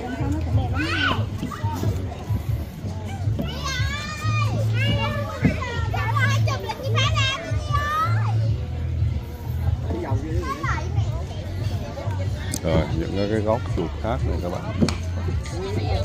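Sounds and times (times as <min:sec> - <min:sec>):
children chattering and calling out: 0:00.0 - 0:16.0.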